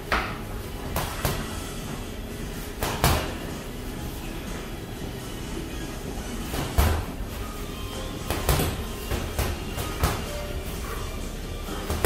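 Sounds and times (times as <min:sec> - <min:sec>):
steady background hum: 0:00.0 - 0:12.0
punches thudding on heavy bag: 0:02.7 - 0:03.4, 0:06.5 - 0:07.2.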